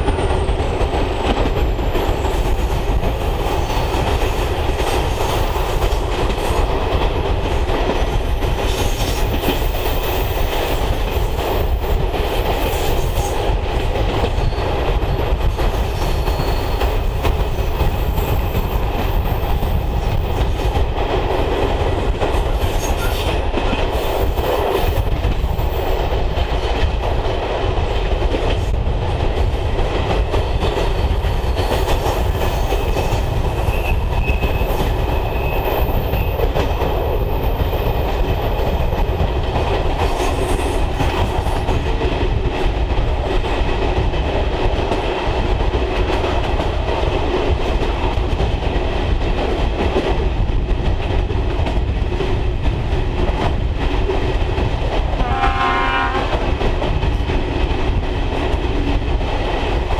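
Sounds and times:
clickety-clack of track: 0.0s - 59.9s
train wheels rumbling on rail: 0.0s - 59.9s.

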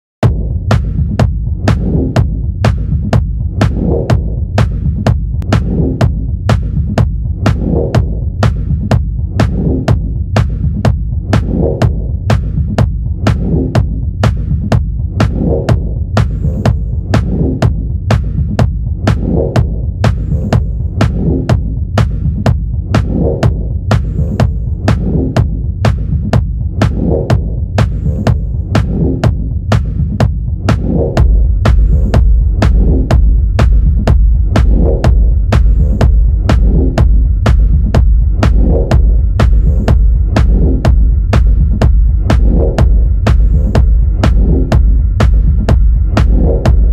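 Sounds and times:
deep bass: 0.0s - 46.9s
techno music: 0.2s - 46.9s.

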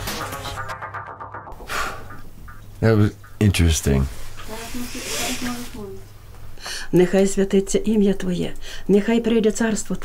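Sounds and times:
drawn-out hiss: 4.2s - 6.0s
woman speaking softly: 4.4s - 6.0s.

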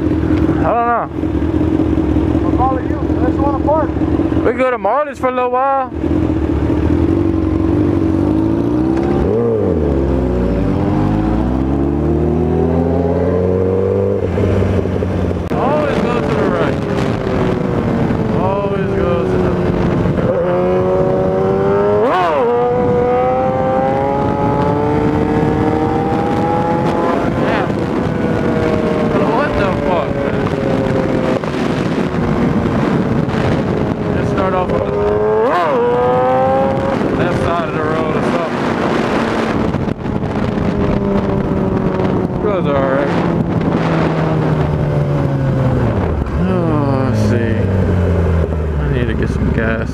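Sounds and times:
motorcycle engines running: 0.0s - 49.9s.

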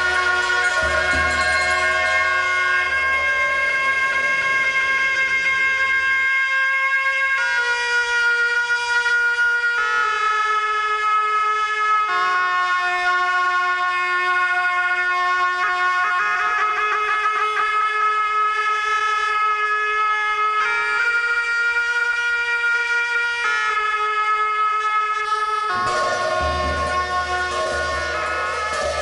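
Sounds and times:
slow instrumental music: 0.0s - 6.5s, 25.6s - 29.0s.

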